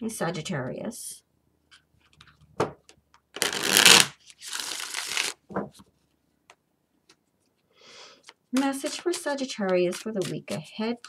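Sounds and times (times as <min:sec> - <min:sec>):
deck of cards being shuffled: 0:03.4 - 0:05.8.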